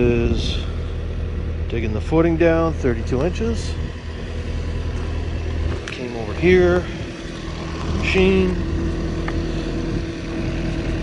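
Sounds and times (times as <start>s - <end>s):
excavator engine idling: 0.0s - 11.0s.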